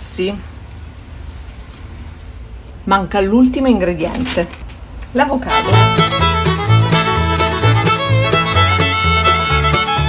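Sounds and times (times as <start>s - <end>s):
woman's voice: 0.0s - 0.5s, 2.8s - 5.7s
low hum with faint hiss: 0.0s - 10.0s.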